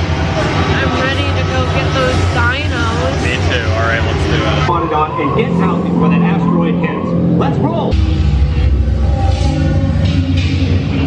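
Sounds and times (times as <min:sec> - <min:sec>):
ride music: 0:00.0 - 0:11.0.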